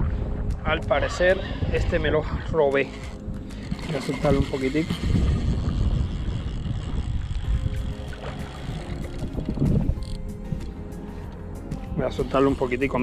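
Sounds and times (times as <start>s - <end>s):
faint background music: 0.0s - 13.0s
wind rumble on microphone: 0.0s - 13.0s.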